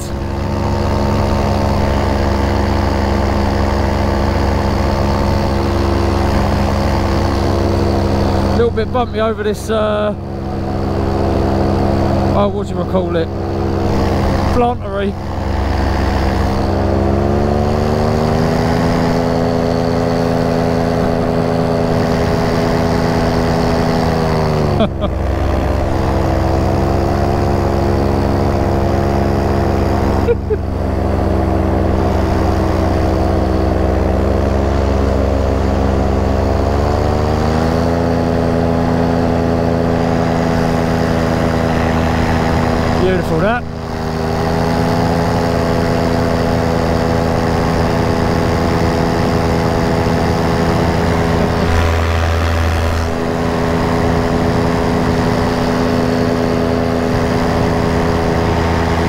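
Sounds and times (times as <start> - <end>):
paramotor engine and propeller: 0.0 - 59.0.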